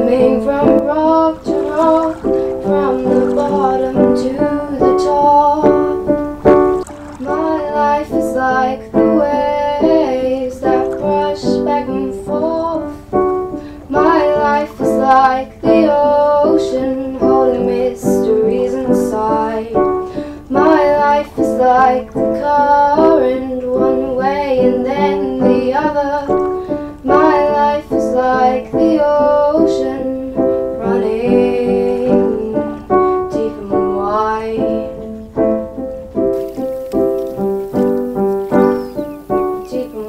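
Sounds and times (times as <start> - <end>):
woman singing slow melody: 0.0 - 6.5, 7.2 - 35.6, 37.8 - 40.0
piano accompaniment: 0.0 - 40.0.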